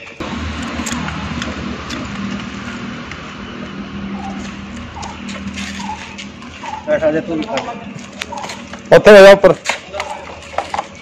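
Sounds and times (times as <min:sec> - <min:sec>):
vehicle engine running: 0:00.1 - 0:11.0.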